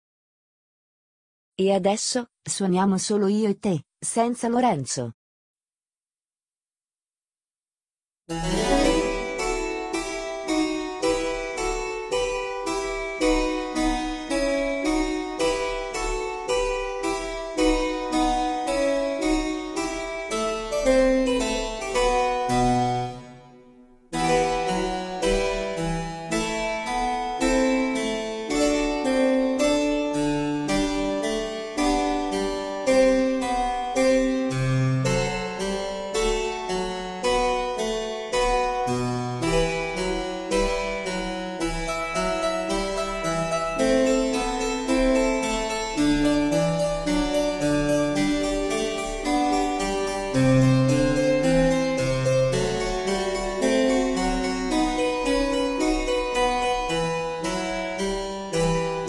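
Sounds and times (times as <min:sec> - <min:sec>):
harpsichord playing chords: 0:08.3 - 0:59.0.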